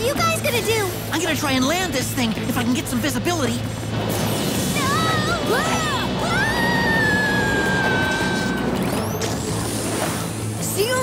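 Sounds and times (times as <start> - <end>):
dramatic cartoon soundtrack music: 0.0 - 11.0.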